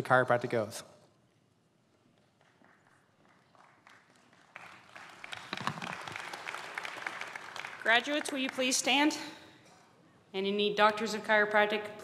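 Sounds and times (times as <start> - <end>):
audience applause: 2.4 - 8.6.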